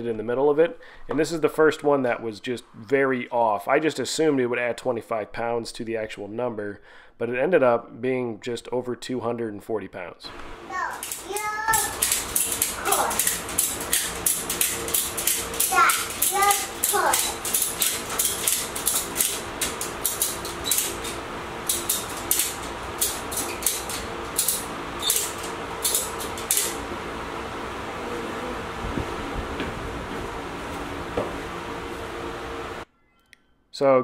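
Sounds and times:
floor fan humming: 10.3 - 32.9
ratchet strap clicking: 11.0 - 26.8.

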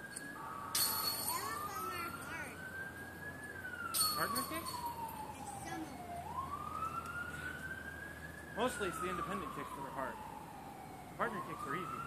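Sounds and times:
emergency vehicle siren wailing: 0.0 - 12.0.

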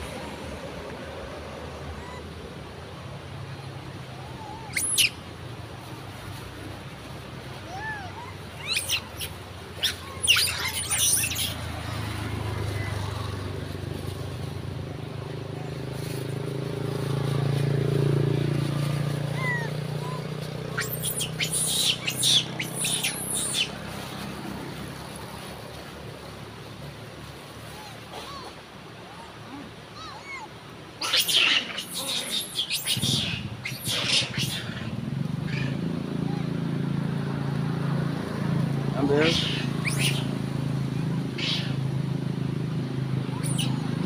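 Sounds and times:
passing vehicle rumble: 0.0 - 44.0
monkeys squealing: 4.1 - 5.2, 7.6 - 13.3, 19.2 - 23.8, 27.8 - 36.5, 39.0 - 40.4, 41.2 - 41.9, 43.2 - 44.0.

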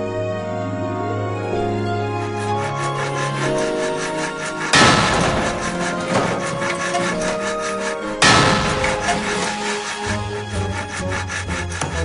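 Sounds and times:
soft background music: 0.0 - 12.0
saw cutting wood: 1.7 - 12.0.

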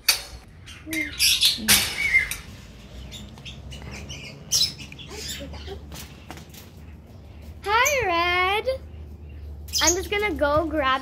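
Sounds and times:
parrots chirping and clicking: 0.0 - 8.1, 8.8 - 10.6.

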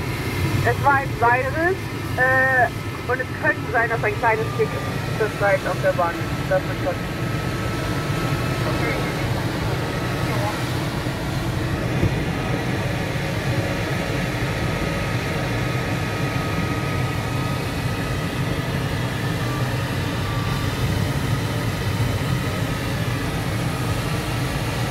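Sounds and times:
cockpit airflow noise: 0.0 - 24.9.

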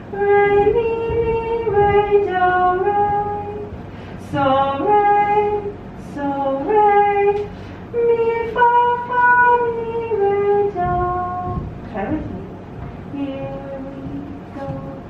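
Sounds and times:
woman singing unaccompanied: 0.0 - 15.0.

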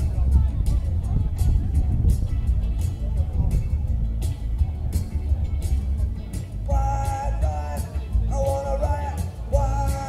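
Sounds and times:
amplified upright bass: 0.0 - 10.0
cajon: 0.0 - 10.0
ukulele punk band playing: 0.0 - 10.0.

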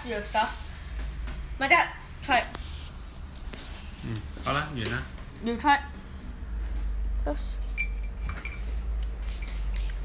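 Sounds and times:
teaspoon clinking against mug: 7.8 - 8.7.

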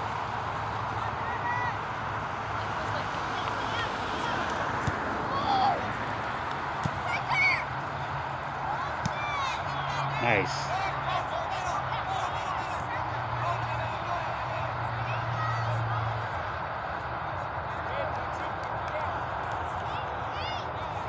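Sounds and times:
distant voices shouting: 0.0 - 21.0.

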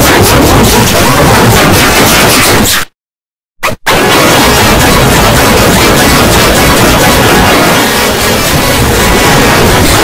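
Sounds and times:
distorted wall of noise: 3.6 - 10.0.

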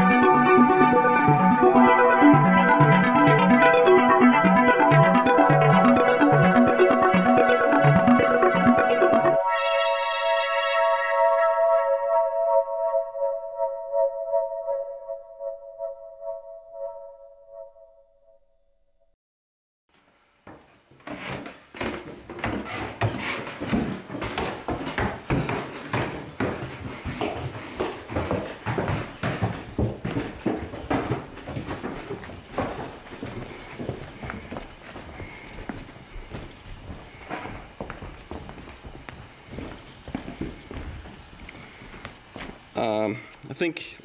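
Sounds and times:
footsteps on wooden floor: 20.0 - 42.8.

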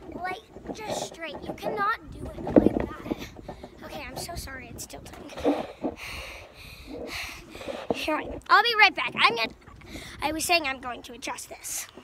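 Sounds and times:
person breathing hard: 5.5 - 8.0.

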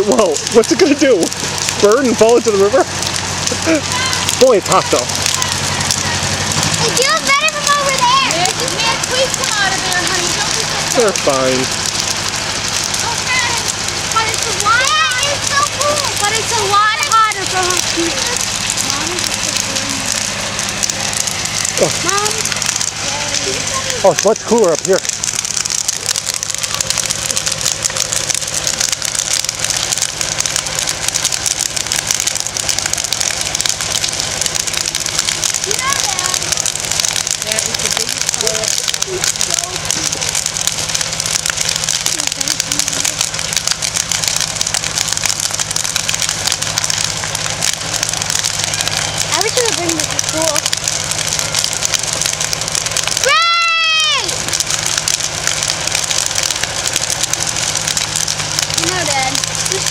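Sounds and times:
fire crackling: 0.0 - 59.9.

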